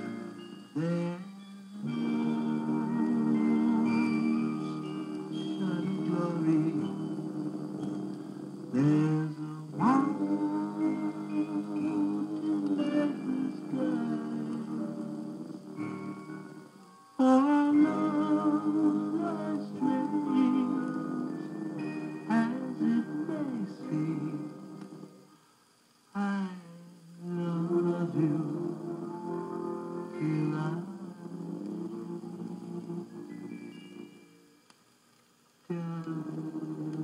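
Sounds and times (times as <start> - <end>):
vocal group singing in harmony: 0.0 - 25.4, 26.2 - 34.2, 35.7 - 37.0.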